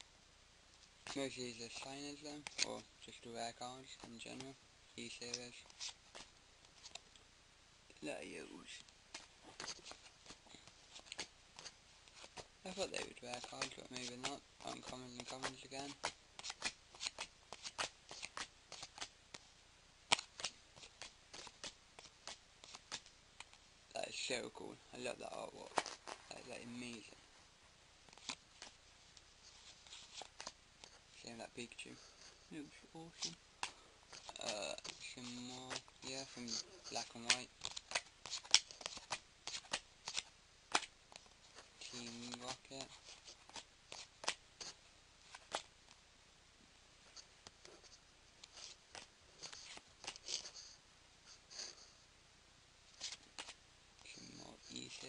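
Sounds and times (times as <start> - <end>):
card rustle: 0.8 - 7.1, 8.6 - 19.5, 20.1 - 24.3, 25.3 - 27.2, 28.0 - 31.1, 33.0 - 45.7, 47.1 - 50.8, 53.0 - 53.6
trading cards flicking: 9.1 - 19.1, 20.1 - 23.6, 33.2 - 41.2.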